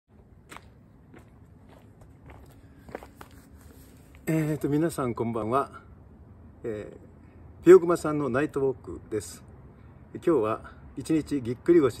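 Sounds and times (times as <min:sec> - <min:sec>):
footsteps on paved sidewalk: 0:00.1 - 0:04.6.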